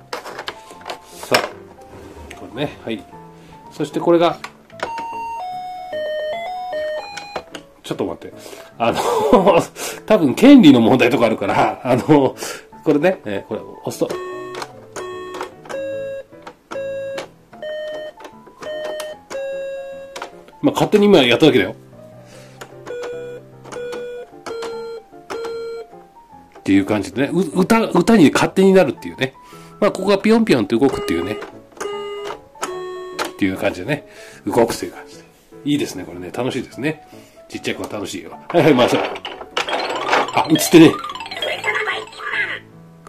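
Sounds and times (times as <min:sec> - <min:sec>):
toy playing electronic melody: 0:04.8 - 0:07.4, 0:14.1 - 0:20.2, 0:22.9 - 0:25.9, 0:30.9 - 0:33.4, 0:39.7 - 0:42.6.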